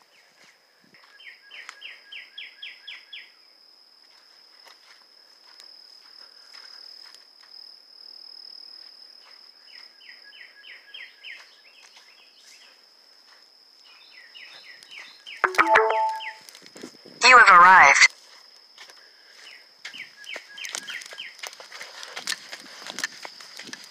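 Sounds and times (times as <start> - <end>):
insects droning: 1.2 - 15.4, 18.2 - 23.9
footsteps on sand: 21.0 - 23.9.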